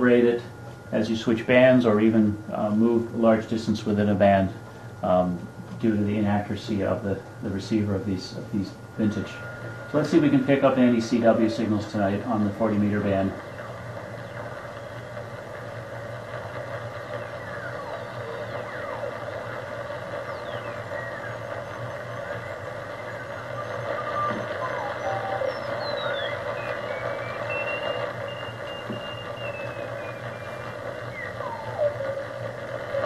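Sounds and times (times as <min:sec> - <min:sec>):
radio band hiss: 0:00.0 - 0:33.0
sliding radio whistling tones: 0:07.6 - 0:33.0
morse code beeps: 0:20.2 - 0:32.2.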